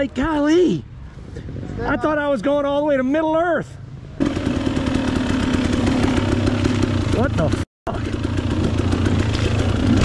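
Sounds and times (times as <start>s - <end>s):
dirt bike engine running: 4.2s - 10.0s.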